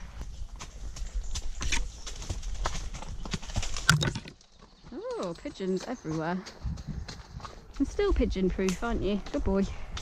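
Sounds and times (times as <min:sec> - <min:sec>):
hoofbeats on grass: 0:00.0 - 0:10.0.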